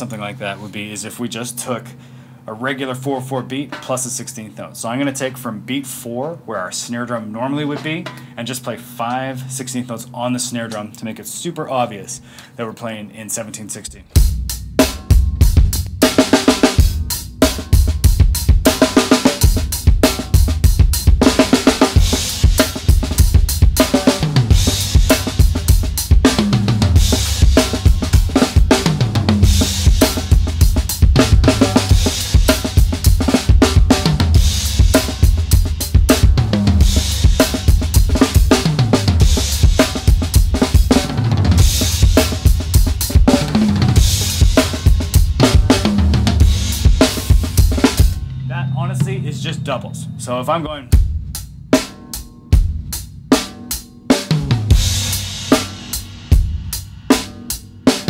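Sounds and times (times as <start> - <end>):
drum kit groove: 2.6 - 12.3, 13.3 - 58.0.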